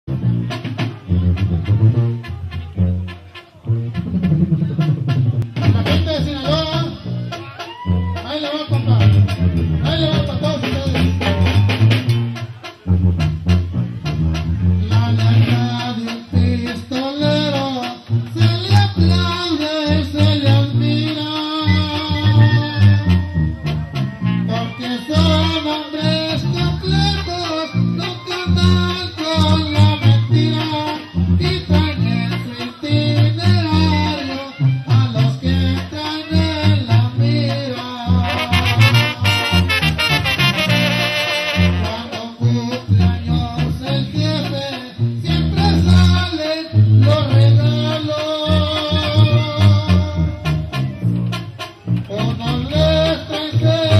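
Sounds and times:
strong bass line: 0.0 - 53.9
brass band playing: 0.1 - 53.9
man singing: 4.8 - 11.9, 14.8 - 23.5, 24.2 - 51.1, 52.0 - 53.9.

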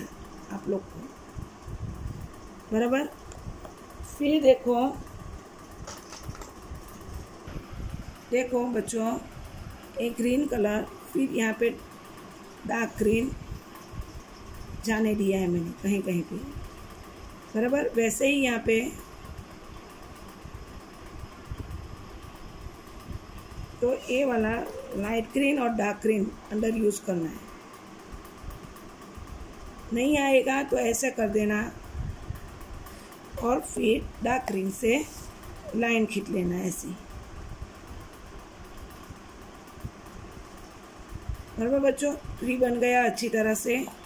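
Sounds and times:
low room hum: 0.0 - 44.0.

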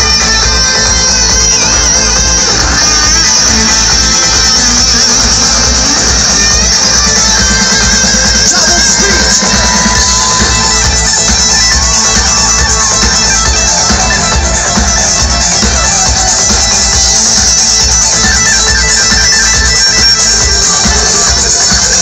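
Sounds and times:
live band playing dance-pop: 0.0 - 22.0
pounding low beat: 0.0 - 22.0.

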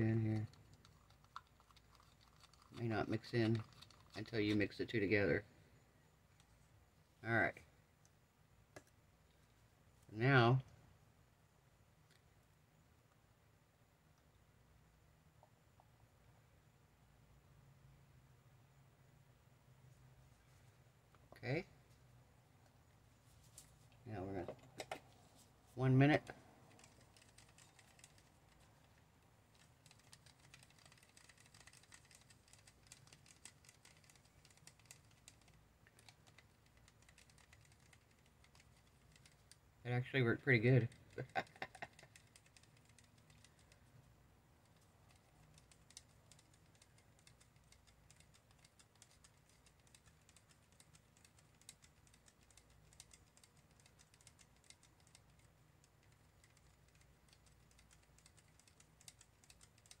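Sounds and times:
faint low hum: 0.0 - 60.0
wooden stick stirring in cup: 0.1 - 4.7.

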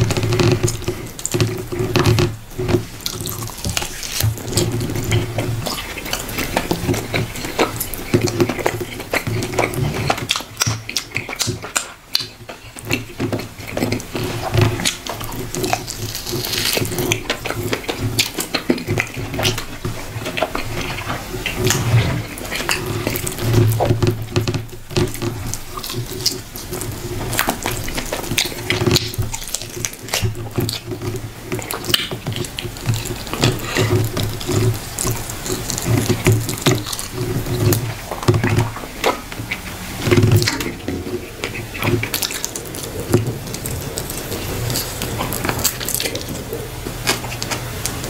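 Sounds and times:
hands squishing food: 0.0 - 48.0
wet chewing: 0.0 - 48.0.

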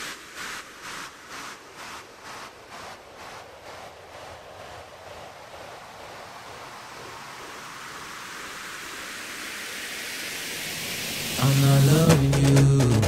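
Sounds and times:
synthesized white-noise riser: 0.0 - 13.0.

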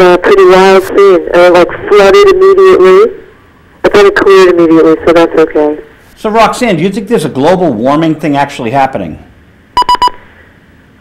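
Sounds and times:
short high electronic beeps: 9.8 - 10.2.

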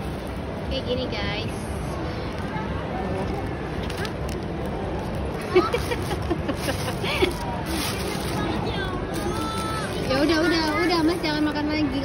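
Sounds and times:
crowd hubbub: 0.0 - 12.0.

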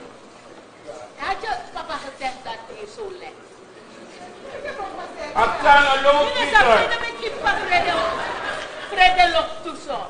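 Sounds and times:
actors speaking on stage: 0.8 - 10.0.

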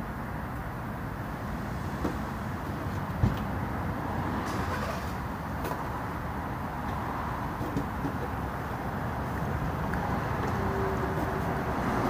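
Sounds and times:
road traffic rumble: 0.0 - 12.0.

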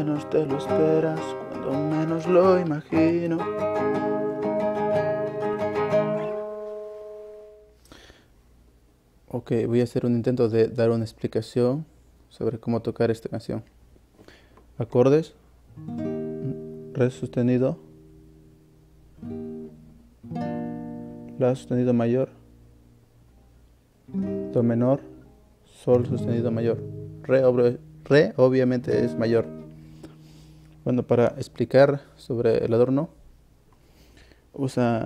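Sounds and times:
fingerpicked classical guitar: 0.0 - 7.7, 15.7 - 23.0, 24.1 - 31.5.

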